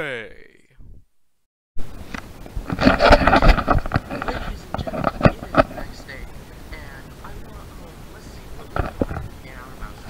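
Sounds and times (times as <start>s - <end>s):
camera handling knocks and rustling: 2.1s - 5.8s.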